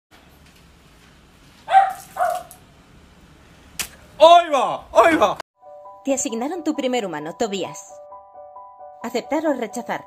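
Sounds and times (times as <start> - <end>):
dog barking: 1.7 - 2.6.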